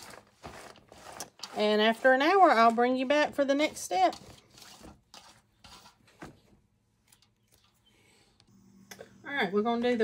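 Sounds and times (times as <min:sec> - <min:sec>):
hand mixing cabbage in a bowl: 0:00.0 - 0:07.7.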